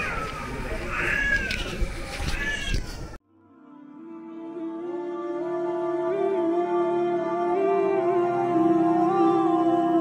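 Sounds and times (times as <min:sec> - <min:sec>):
busy background noise: 0:00.0 - 0:03.2
cat meowing: 0:02.3 - 0:02.8.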